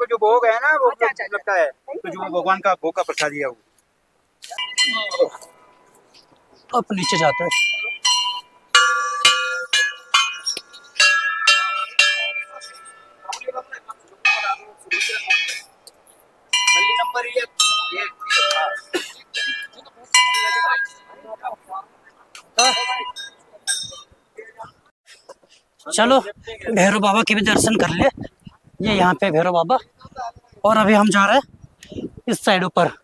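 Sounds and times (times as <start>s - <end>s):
brass bells struck by hand: 4.6s - 5.8s, 7.0s - 13.6s, 14.2s - 15.7s, 16.5s - 21.2s, 22.6s - 24.0s.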